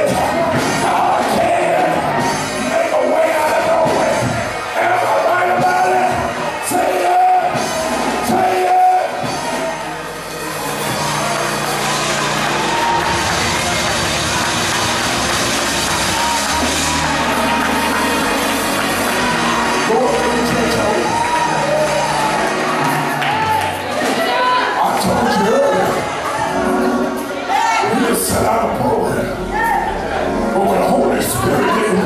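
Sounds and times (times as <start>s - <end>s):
choir and congregation singing: 0.0s - 32.0s
crowd shouting and cheering: 0.0s - 32.0s.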